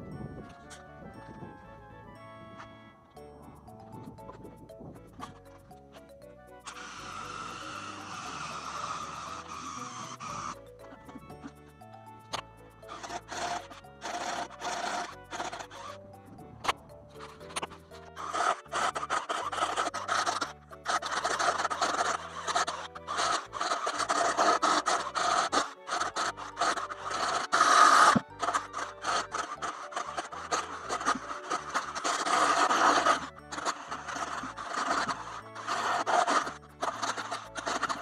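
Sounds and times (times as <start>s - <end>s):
background music: 0.0s - 38.0s
cordless drill boring into wood: 6.6s - 38.0s.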